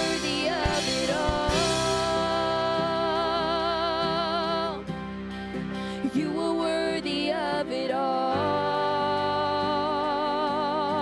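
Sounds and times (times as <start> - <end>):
keyboard accompaniment: 0.0 - 11.0.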